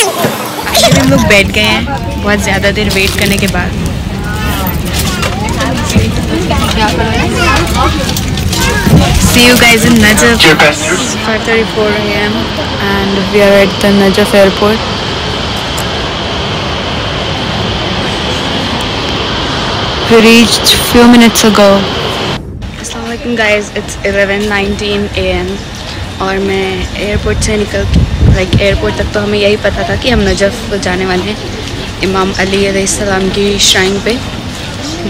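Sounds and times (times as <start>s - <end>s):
people talking: 0.0s - 14.9s, 19.9s - 22.1s, 22.7s - 35.0s
aircraft cabin low hum: 0.0s - 35.0s
airport waiting hall background noise: 0.0s - 35.0s.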